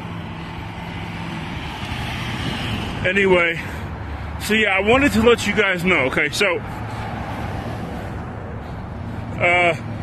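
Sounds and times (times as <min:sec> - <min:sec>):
road traffic passing: 0:00.0 - 0:10.0.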